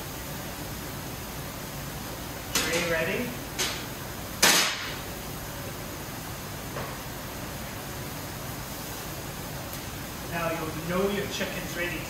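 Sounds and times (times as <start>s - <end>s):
extraction fan: 0.0s - 12.0s
gas grill burners hissing: 0.0s - 12.0s.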